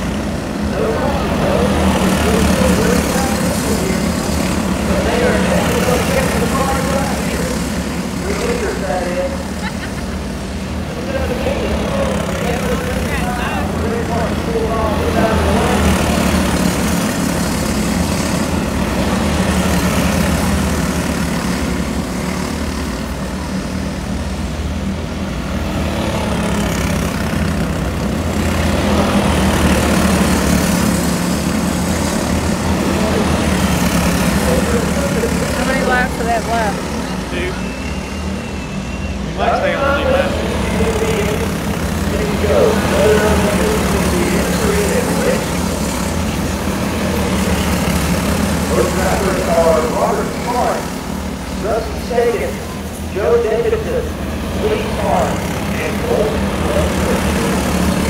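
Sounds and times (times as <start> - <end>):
race car engines: 0.0 - 58.0.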